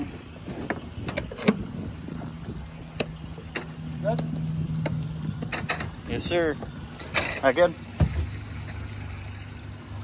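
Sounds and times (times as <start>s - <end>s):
thump: 8.0s - 8.3s.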